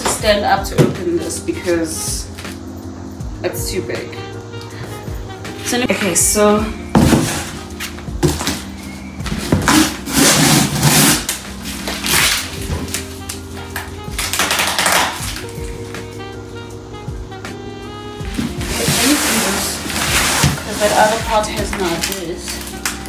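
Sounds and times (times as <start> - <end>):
background music with held notes: 0.0 - 23.0
cardboard box scraping and rustling: 6.8 - 13.1, 18.2 - 22.4
scissors cutting strapping and tape: 9.6 - 15.5, 18.8 - 23.0.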